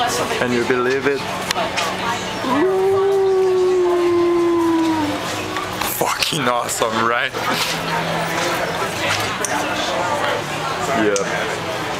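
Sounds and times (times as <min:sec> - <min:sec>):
person singing a long note: 0:02.4 - 0:05.2.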